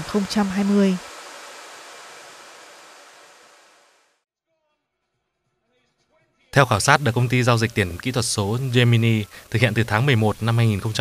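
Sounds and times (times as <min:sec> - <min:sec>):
cooling fans whirring: 0:00.0 - 0:04.0.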